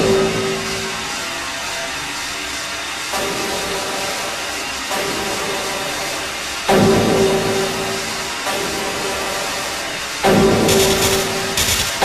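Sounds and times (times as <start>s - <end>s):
noisy hissing drone: 0.0s - 12.0s.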